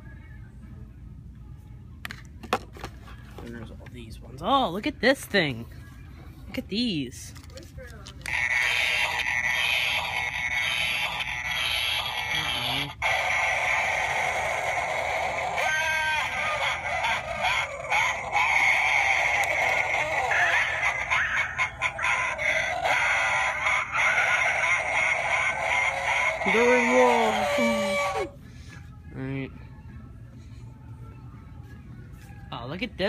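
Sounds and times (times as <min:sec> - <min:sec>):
toy sound effects: 0:08.2 - 0:28.4
recorded witch voice: 0:08.3 - 0:14.0, 0:14.8 - 0:28.3.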